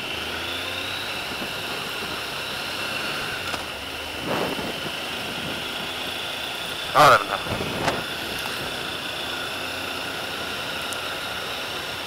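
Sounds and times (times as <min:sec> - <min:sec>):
motorcycle riding at speed: 0:00.0 - 0:12.0
wind rushing over microphone: 0:04.1 - 0:06.1, 0:06.7 - 0:08.8
high whine: 0:04.2 - 0:09.4.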